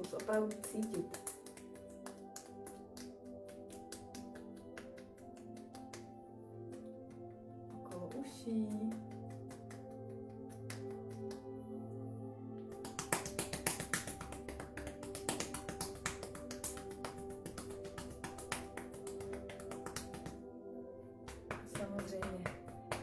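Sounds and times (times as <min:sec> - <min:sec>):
palms patting head: 0:00.0 - 0:11.6, 0:12.7 - 0:20.5, 0:21.2 - 0:23.0
soft background music: 0:00.0 - 0:23.0.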